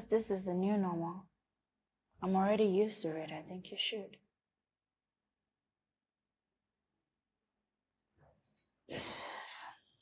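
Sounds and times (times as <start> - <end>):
person sighing: 8.9 - 9.6.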